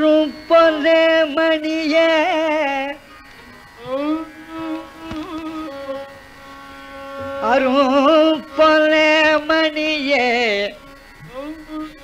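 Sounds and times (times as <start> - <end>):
man singing ornamented phrases: 0.0 - 3.0, 3.8 - 6.1, 7.4 - 12.0
steady drone: 0.0 - 12.0
violin melody: 0.0 - 12.0.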